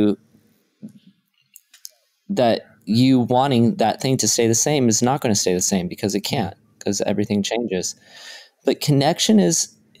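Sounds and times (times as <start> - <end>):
man talking: 0.0 - 0.2, 2.3 - 9.8.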